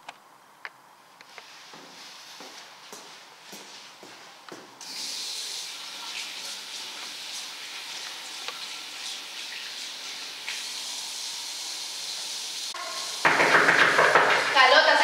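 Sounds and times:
tap water running into basin: 4.8s - 15.0s.

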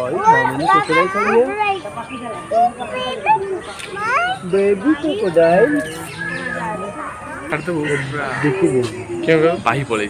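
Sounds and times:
high-pitched voices talking: 0.0s - 9.6s.

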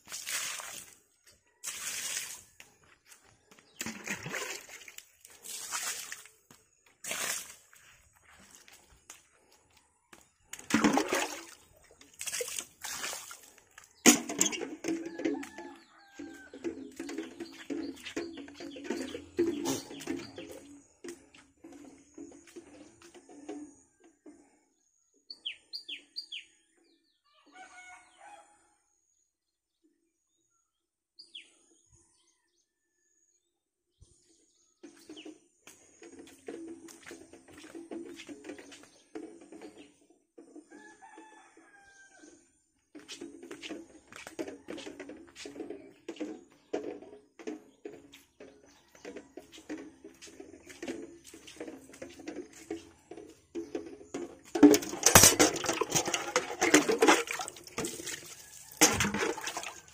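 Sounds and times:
close knocking and splashing: 0.0s - 1.0s, 1.6s - 2.8s, 3.4s - 8.7s, 10.5s - 23.2s, 43.2s - 59.9s
rooster crowing: 15.0s - 16.7s, 40.7s - 42.2s.

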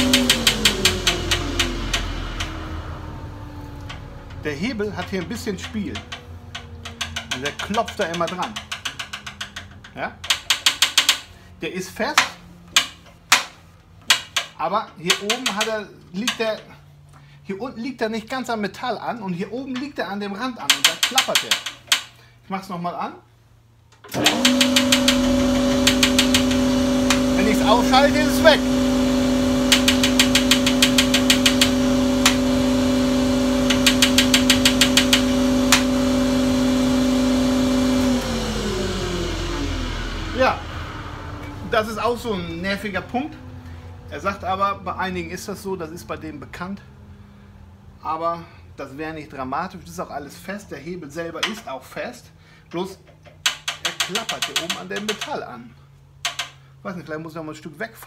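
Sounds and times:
lever rattling against metal: 0.0s - 2.8s, 3.8s - 11.4s, 12.1s - 16.7s, 20.6s - 22.2s, 24.0s - 37.2s, 53.0s - 55.4s, 56.2s - 56.6s
planer motor humming: 0.0s - 8.5s, 24.1s - 43.9s
motor running down: 0.0s - 8.8s, 24.1s - 45.2s
metal lever knocking on metal: 5.2s - 11.3s, 20.7s - 22.1s, 53.3s - 55.4s.

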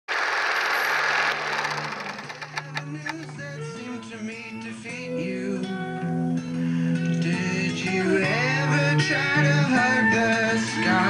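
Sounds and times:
mechanical whirring hum: 0.1s - 3.4s
sharp clicks: 0.2s - 3.4s.

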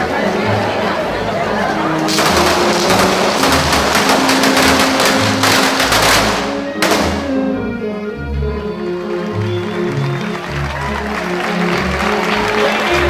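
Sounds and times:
music: 0.0s - 13.0s
firecrackers rattling: 2.1s - 7.3s
sharp bang: 2.1s - 7.5s.

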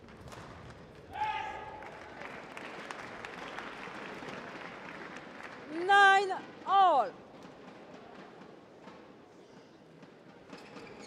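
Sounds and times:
sports hall ambience: 0.0s - 11.0s
loud shout: 1.1s - 2.2s.

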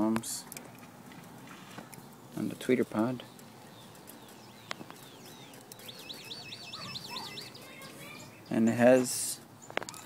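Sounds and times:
bird singing: 2.0s - 8.8s.

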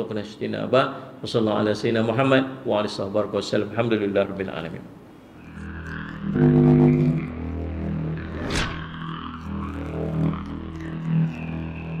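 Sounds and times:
low synthesized drone: 5.3s - 12.0s
whoosh: 8.2s - 9.4s.

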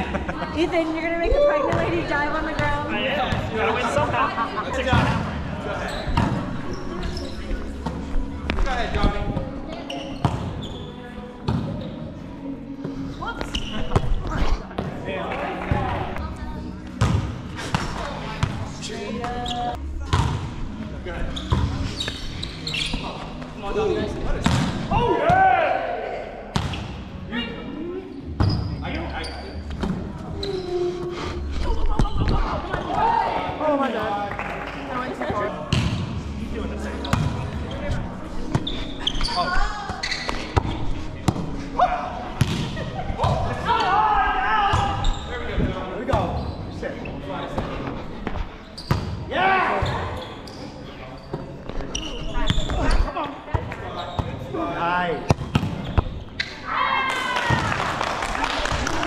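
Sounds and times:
volleyball slaps and bounces: 24.4s - 24.8s, 42.4s - 43.5s, 55.3s - 56.1s.

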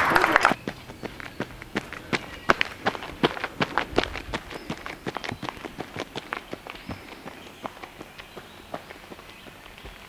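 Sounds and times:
running footsteps on gravel: 0.0s - 10.0s.

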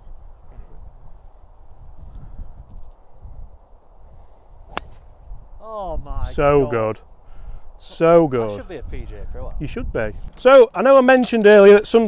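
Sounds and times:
wind rumble on microphone: 0.0s - 6.8s, 7.4s - 10.4s
golf club striking ball: 4.7s - 5.2s.

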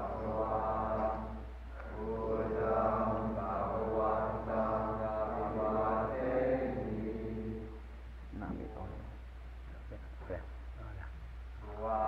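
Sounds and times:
monks chanting in unison: 0.0s - 7.8s, 11.6s - 12.0s
low steady hum: 0.0s - 12.0s.

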